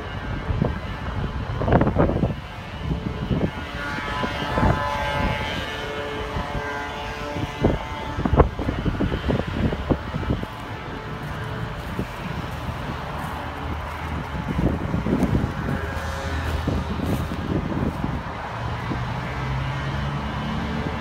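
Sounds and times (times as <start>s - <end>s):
distant road traffic hum: 0.0s - 21.0s
wind buffeting microphone: 0.0s - 21.0s.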